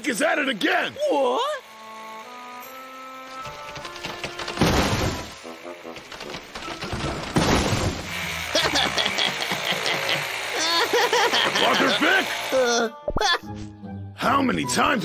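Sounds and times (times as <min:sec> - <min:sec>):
cartoon soundtrack music: 0:11.6 - 0:15.0.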